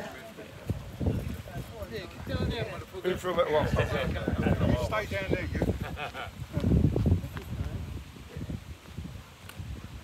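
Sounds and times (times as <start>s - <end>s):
men talking over one another: 0.0s - 8.6s.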